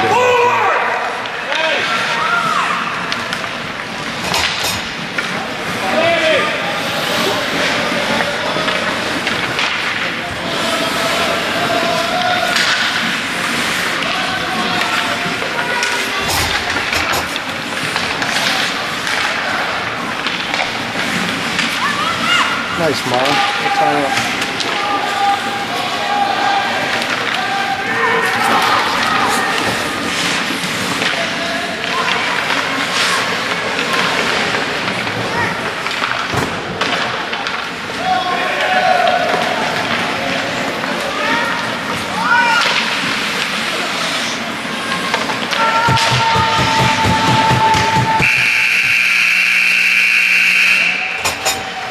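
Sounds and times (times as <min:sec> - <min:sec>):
hockey sticks and pucks clattering: 0:00.0 - 0:51.9
spectators shouting: 0:10.2 - 0:17.5, 0:21.7 - 0:30.3, 0:45.4 - 0:49.7
loud steady tone: 0:48.2 - 0:51.4.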